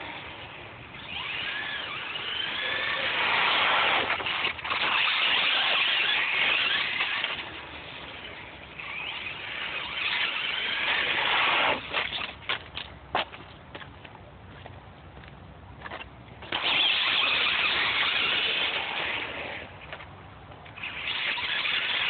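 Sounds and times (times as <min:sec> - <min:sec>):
electric motor whining: 0:00.0 - 0:12.3, 0:16.4 - 0:19.8, 0:20.8 - 0:22.0.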